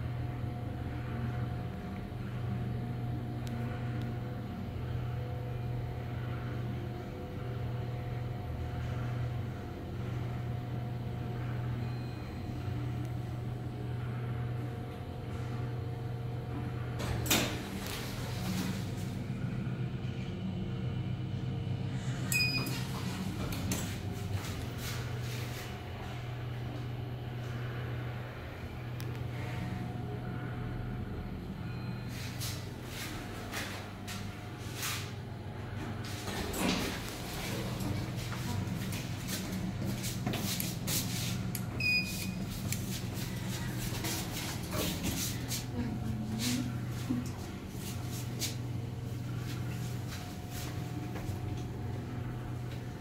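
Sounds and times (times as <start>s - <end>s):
elevator hum and whine: 0.0s - 53.0s
elevator doors sliding: 22.1s - 26.3s, 34.6s - 47.9s.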